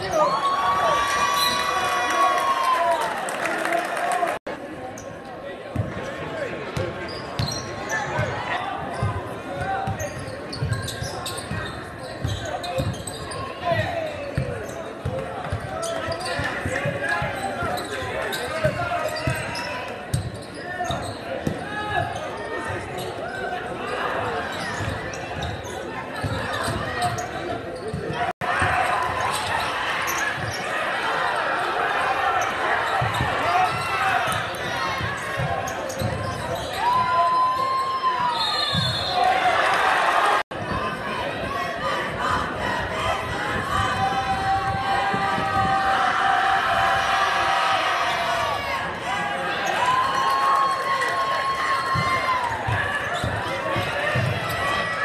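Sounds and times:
crowd chatter: 0.0 - 55.0.

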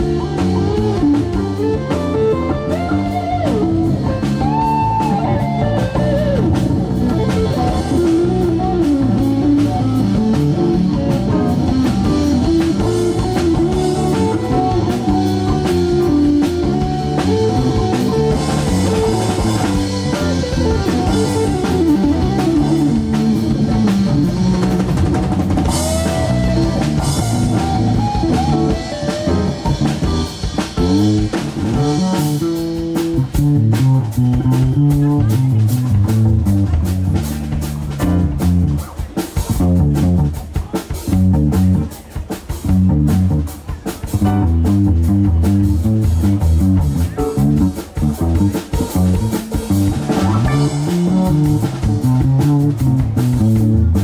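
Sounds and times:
drum kit: 0.0 - 54.0
electric bass: 0.0 - 54.0
electric guitar lead: 0.0 - 54.0.

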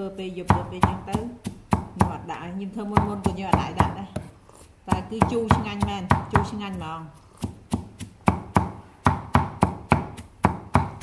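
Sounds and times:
knife chopping on wooden block: 0.5 - 2.2, 2.9 - 11.0.

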